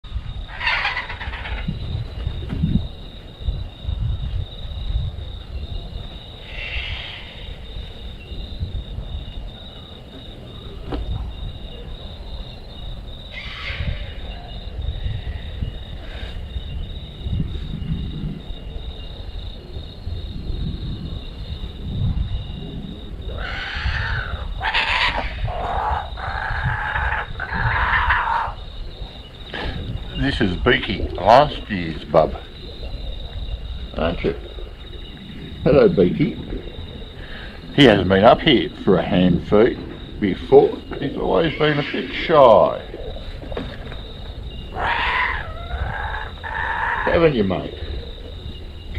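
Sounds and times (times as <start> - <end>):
wind rumble on microphone: 0.0 - 48.9
kookaburras calling: 0.5 - 1.8, 6.4 - 7.5, 13.3 - 14.4, 23.3 - 28.6, 41.0 - 43.2, 44.6 - 47.8.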